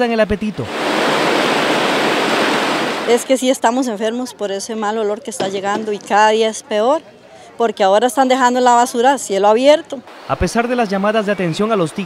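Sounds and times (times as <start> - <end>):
water rushing over a weir: 0.5 - 3.7.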